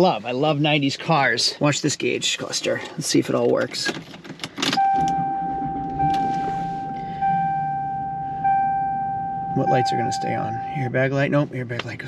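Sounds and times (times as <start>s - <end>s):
dashboard warning chime: 4.8s - 11.0s.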